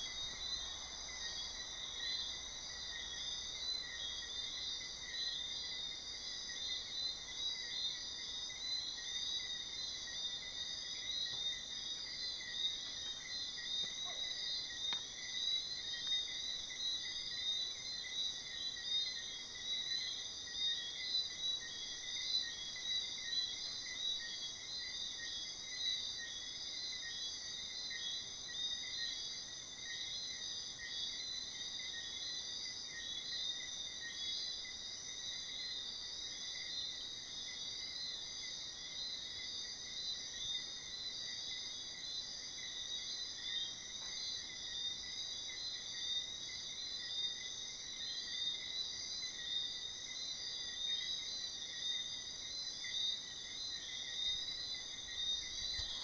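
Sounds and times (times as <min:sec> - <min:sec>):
crickets and insects trilling: 0:00.0 - 0:56.0.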